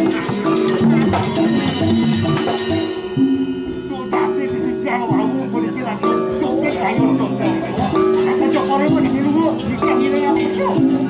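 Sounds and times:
clashing percussion: 0.0s - 11.0s
gamelan metallophones ringing: 0.0s - 11.0s.

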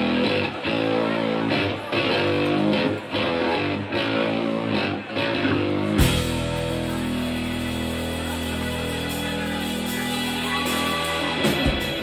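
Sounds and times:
rock band sustained chord: 0.0s - 12.0s.

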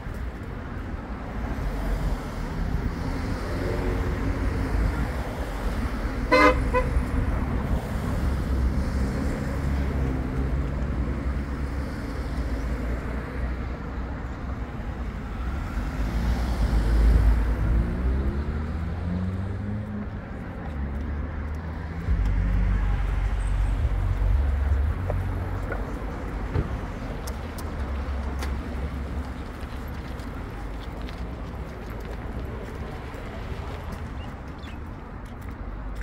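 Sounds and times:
cars passing on road: 0.0s - 36.0s
car horn toot: 6.3s - 7.0s.

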